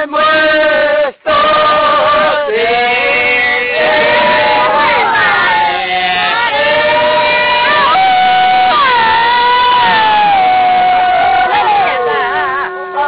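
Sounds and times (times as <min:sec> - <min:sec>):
group singing a work chant: 0:00.0 - 0:13.0.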